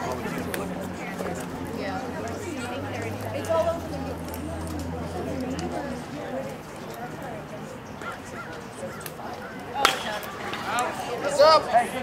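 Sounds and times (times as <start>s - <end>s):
baseball hitting bat or glove: 9.8s - 10.6s.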